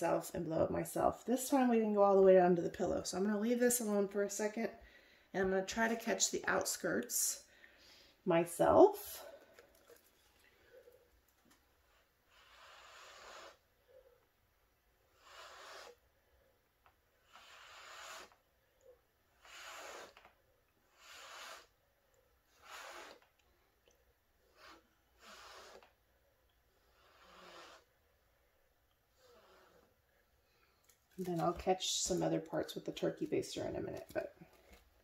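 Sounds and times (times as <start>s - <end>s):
soft puffs of breath: 4.8s - 5.3s, 7.4s - 8.3s.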